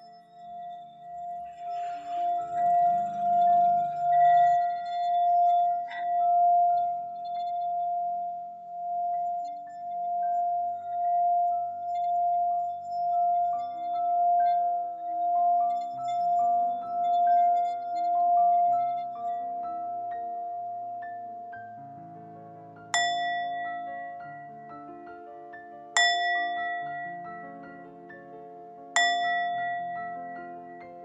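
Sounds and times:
singing bowl ringing tone: 0:00.0 - 0:21.8, 0:23.0 - 0:25.0, 0:25.9 - 0:27.8, 0:29.0 - 0:31.0.

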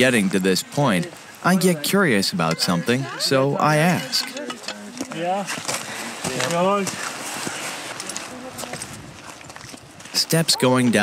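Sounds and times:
people talking: 0:00.0 - 0:05.5, 0:06.2 - 0:07.0, 0:10.2 - 0:11.0.

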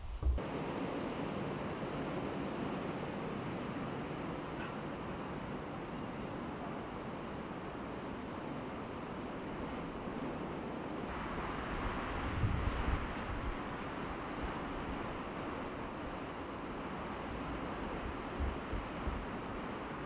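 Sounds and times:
wind over open water: 0:00.0 - 0:20.0
wind buffeting microphone: 0:11.1 - 0:20.0.

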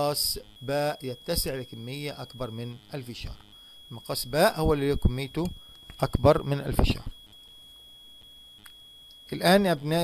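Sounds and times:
high-pitched electronic whine: 0:00.0 - 0:10.0
low hiss and hum: 0:00.0 - 0:10.0.

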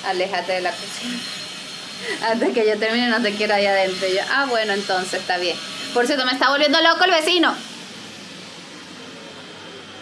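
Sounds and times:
steady mechanical drone: 0:00.0 - 0:10.0.

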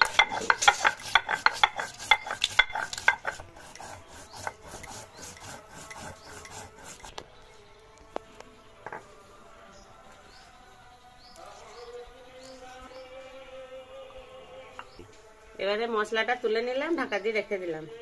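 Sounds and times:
stone roller grinding on stone slab: 0:00.0 - 0:07.2.

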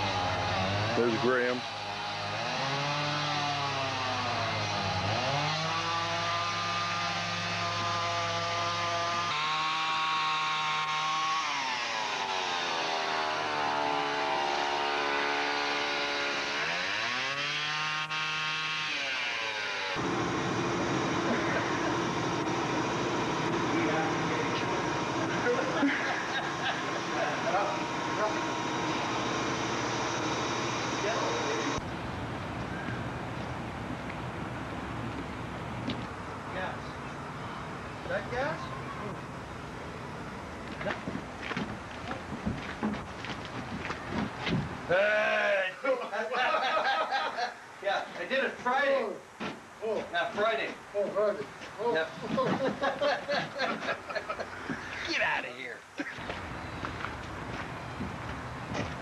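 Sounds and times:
chainsaw cutting log: 0:00.0 - 0:31.8
mechanical background noise: 0:20.0 - 0:45.1, 0:48.2 - 0:59.0.

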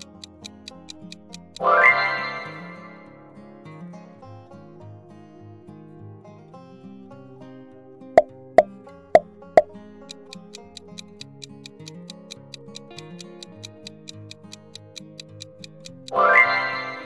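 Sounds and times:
countdown timer ticking: 0:00.0 - 0:03.2, 0:08.2 - 0:17.0
light plucked background music: 0:00.0 - 0:17.0
sharp pops: 0:10.1 - 0:16.2.

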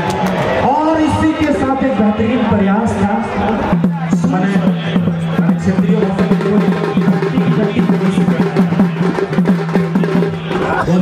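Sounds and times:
quick drum strokes: 0:03.7 - 0:11.0.

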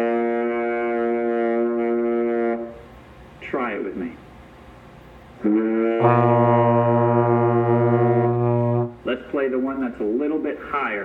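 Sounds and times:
trombones holding a low note: 0:00.0 - 0:02.9, 0:05.4 - 0:09.0.

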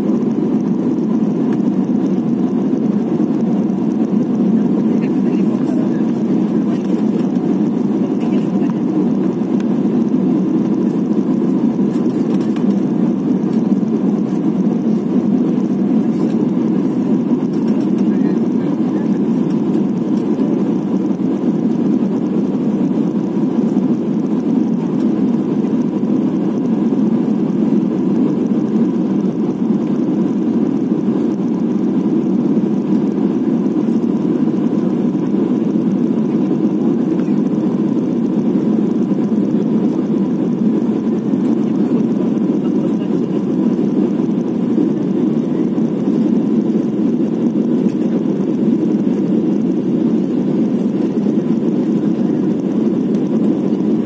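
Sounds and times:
airliner cabin engine roar: 0:00.0 - 0:54.0
faint steady whine: 0:00.0 - 0:54.0.

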